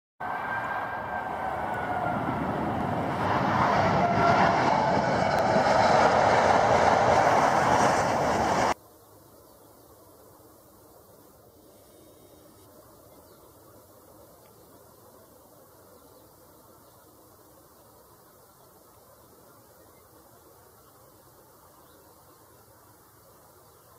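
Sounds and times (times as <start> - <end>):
jet aircraft passing overhead: 0.2 - 8.8
faint outdoor background: 0.2 - 23.9.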